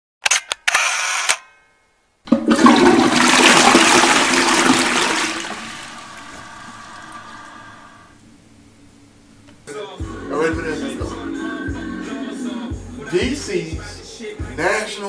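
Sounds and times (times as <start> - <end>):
toilet flushing: 2.3 - 8.2.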